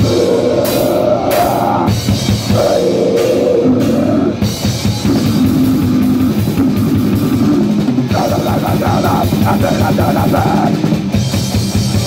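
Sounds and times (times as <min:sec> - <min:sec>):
heavy rock band playing: 0:00.0 - 0:12.0.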